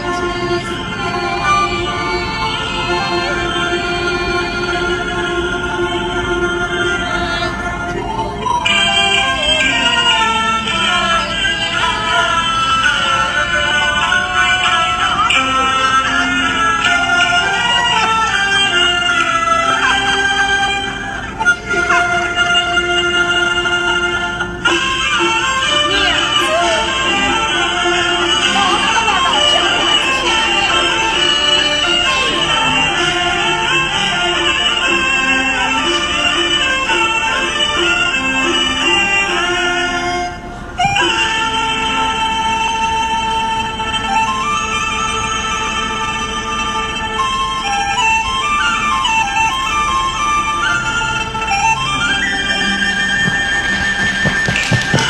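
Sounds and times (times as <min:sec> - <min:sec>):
opera singing high voice: 0:00.0 - 0:15.0, 0:25.8 - 0:33.7
instrumental accompaniment: 0:00.0 - 0:55.0.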